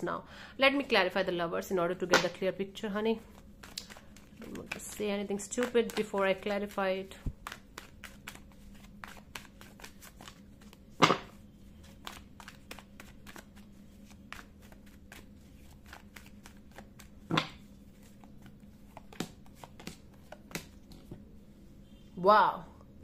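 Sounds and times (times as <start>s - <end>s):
cards shuffling: 3.2s - 21.1s.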